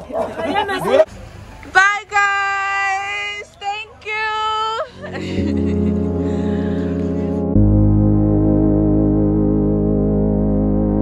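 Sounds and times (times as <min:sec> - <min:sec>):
background music: 0:04.9 - 0:11.0.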